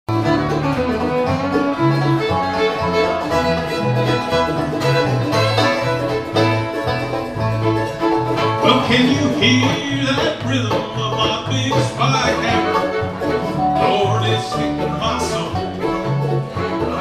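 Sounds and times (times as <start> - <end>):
bass balalaika picking bass line: 0.1 - 17.0
bluegrass band playing: 0.1 - 17.0.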